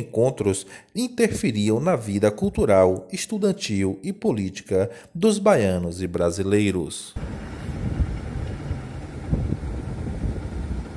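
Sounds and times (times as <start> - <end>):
road traffic: 7.2 - 10.9
wind buffeting microphone: 7.2 - 10.9.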